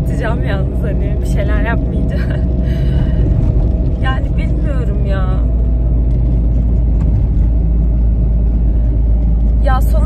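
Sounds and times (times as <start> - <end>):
car cabin road rumble: 0.0 - 10.0.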